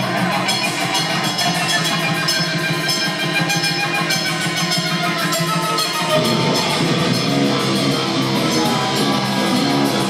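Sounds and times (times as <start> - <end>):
heavy metal band playing: 0.0 - 10.0
rapid cymbal strikes: 0.0 - 10.0.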